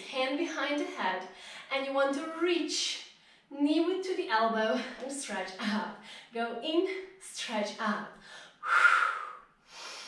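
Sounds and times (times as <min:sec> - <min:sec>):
woman breathing hard: 0:08.2 - 0:10.0.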